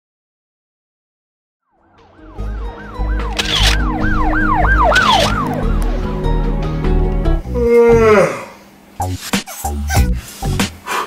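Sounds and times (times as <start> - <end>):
siren yelping: 1.7 - 6.2
low heavy bass rumble: 2.4 - 7.7.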